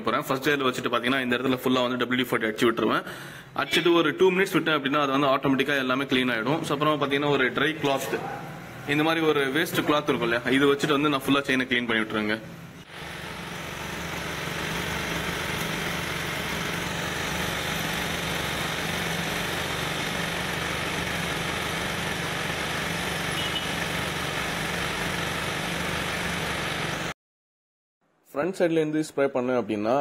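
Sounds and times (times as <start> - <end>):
machine humming and hissing: 12.8 - 27.1.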